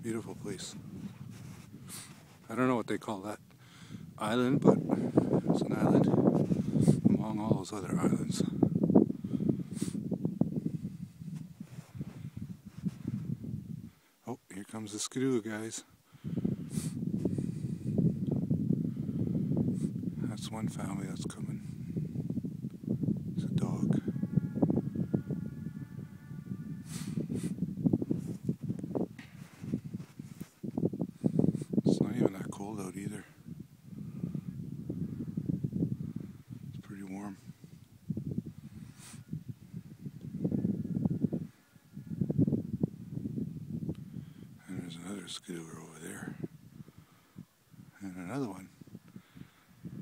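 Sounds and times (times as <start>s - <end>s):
wind buffeting microphone: 0.0s - 14.0s, 16.0s - 50.0s.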